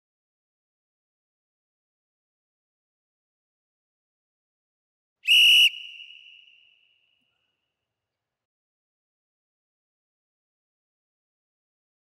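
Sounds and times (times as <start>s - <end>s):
shrill whistle blast: 5.3s - 7.2s.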